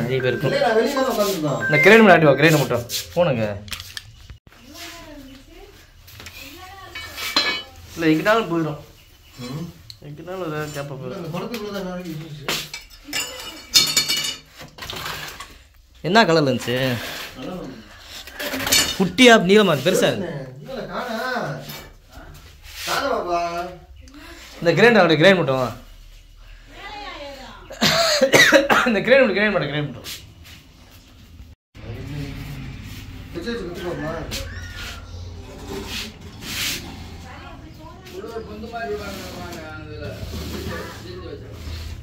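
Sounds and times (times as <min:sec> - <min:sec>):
people speaking: 0:00.0 - 0:03.6, 0:37.1 - 0:41.8
person coughing: 0:27.8 - 0:28.9.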